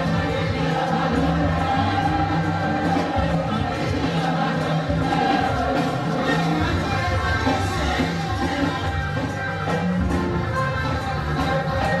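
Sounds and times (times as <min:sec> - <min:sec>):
band with steady bass line: 0:00.0 - 0:12.0
group of voices singing: 0:00.0 - 0:12.0.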